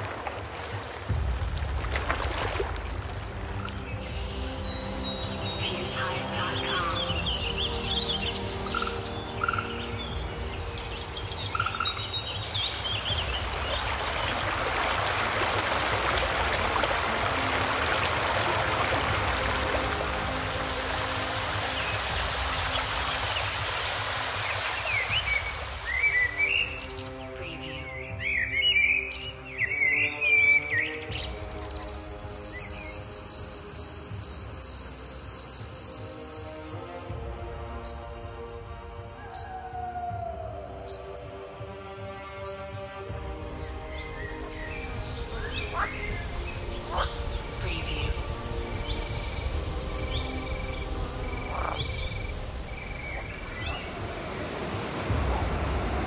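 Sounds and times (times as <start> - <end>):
birds chirping: 3.2 - 14.7, 17.4 - 38.1, 40.8 - 55.6
insect chorus pulsing chirps: 31.8 - 42.7, 43.7 - 54.2
steady rushing noise: 44.2 - 56.0.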